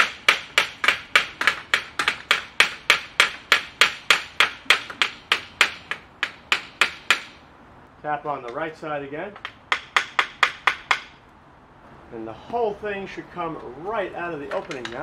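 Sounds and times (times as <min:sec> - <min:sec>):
hammer tapping on metal frame: 0:00.0 - 0:07.4, 0:09.3 - 0:11.2.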